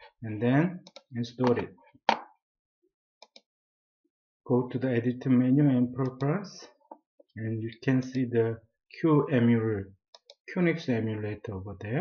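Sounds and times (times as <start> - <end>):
computer mouse clicks: 0.9 - 2.3, 3.2 - 3.5, 10.2 - 10.4.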